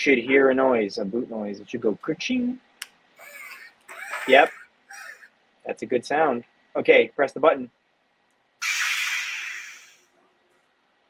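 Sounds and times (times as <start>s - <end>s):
lightsaber ignition hiss: 8.6s - 10.0s.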